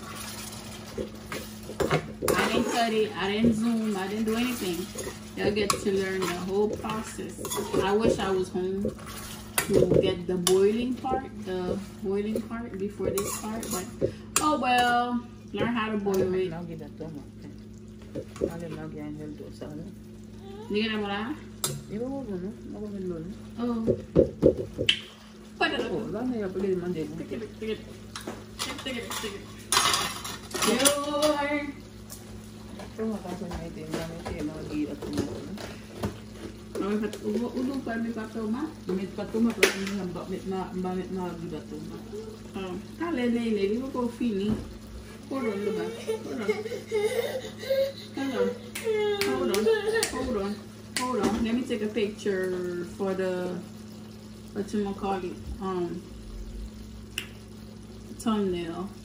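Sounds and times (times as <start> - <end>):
pot of sauce simmering: 0.0 - 59.0
steady low hum: 0.0 - 59.0.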